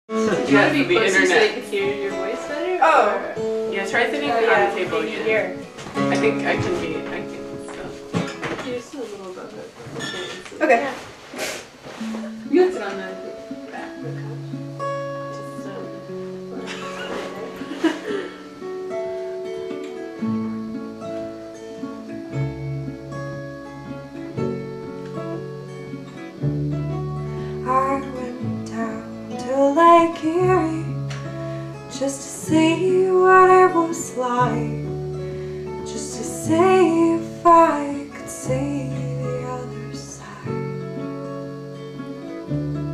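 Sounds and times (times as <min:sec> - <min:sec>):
voices: 0:00.1 - 0:11.1, 0:12.0 - 0:14.7
band playing slow song: 0:11.4 - 0:19.8
bass guitar: 0:21.5 - 0:42.9.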